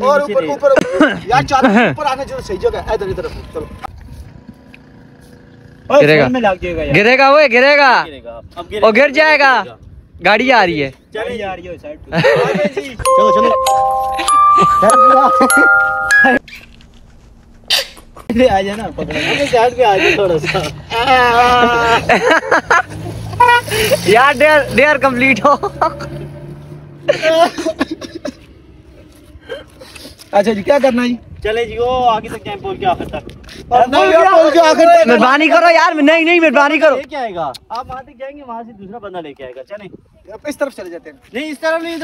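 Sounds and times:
man shouting loudly: 33.8 - 37.0.

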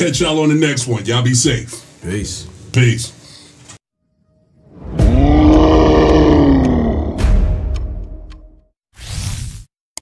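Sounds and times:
deep animal roar: 4.9 - 7.6.

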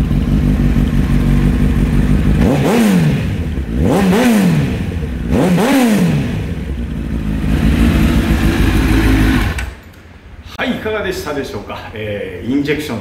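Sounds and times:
motorcycle engine revving and idling: 0.0 - 9.8.

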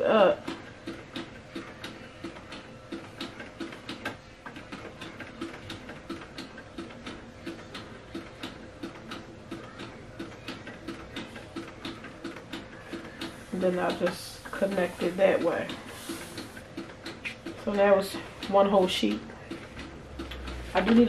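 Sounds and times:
inkjet printer clicking: 0.4 - 21.0.

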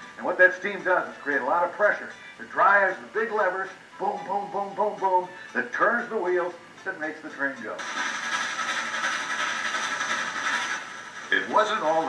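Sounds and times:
train running with steady hiss: 0.0 - 12.0.

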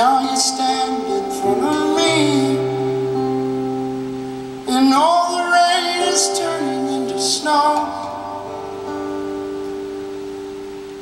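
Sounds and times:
acoustic guitar chord ringing: 0.0 - 11.0
picked guitar notes: 0.0 - 11.0.

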